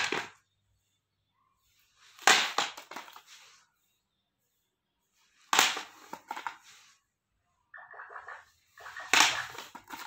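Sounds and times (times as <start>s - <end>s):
plastic cases clattering on tiles: 0.0s - 0.4s, 2.2s - 3.3s, 9.0s - 10.0s.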